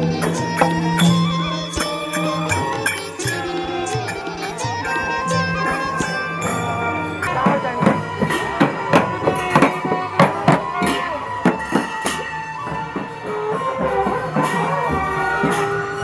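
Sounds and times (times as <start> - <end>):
drums and percussion: 0.0 - 16.0
long horns holding notes: 0.0 - 16.0.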